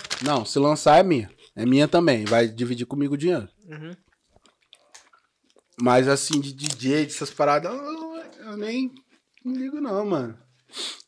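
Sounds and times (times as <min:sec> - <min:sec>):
person chewing crunchy snack: 0:04.1 - 0:06.8
man speaking: 0:05.8 - 0:10.4.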